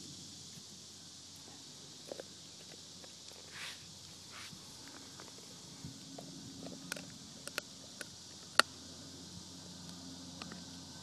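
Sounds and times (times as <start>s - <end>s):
rustle on grass: 3.1s - 6.2s
teeth clicking on bone: 6.6s - 8.7s.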